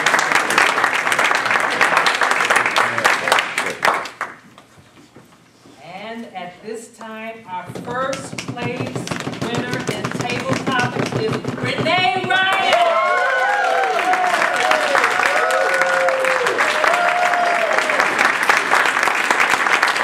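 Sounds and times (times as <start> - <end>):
audience applause: 0.0 - 4.4, 12.5 - 20.0
voices over applause: 12.5 - 20.0.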